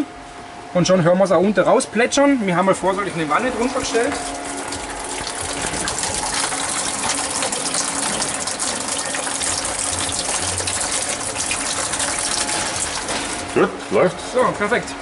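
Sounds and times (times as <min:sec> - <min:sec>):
water splashing into a tub: 0:03.6 - 0:13.6.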